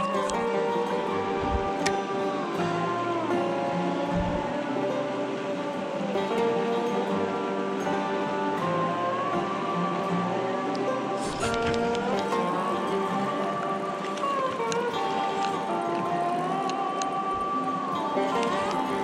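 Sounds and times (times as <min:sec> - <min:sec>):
guitar music with bending notes: 0:00.0 - 0:19.0.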